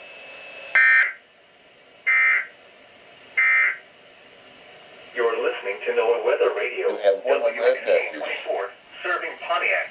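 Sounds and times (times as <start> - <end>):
shrill data bursts from radio: 2.1 - 2.5, 3.4 - 3.8.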